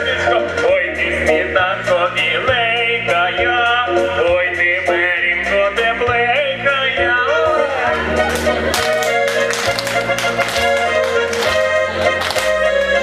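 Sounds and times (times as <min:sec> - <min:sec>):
instrumental accompaniment with bass: 0:00.0 - 0:13.0.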